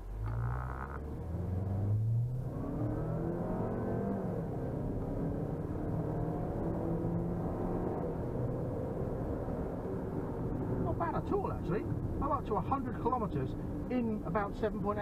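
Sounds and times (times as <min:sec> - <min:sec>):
car engine accelerating: 0:00.0 - 0:12.1.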